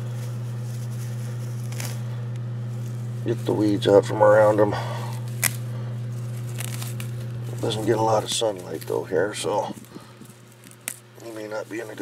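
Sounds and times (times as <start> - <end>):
short rustle: 0.0 - 3.7
steady low hum: 0.0 - 12.0.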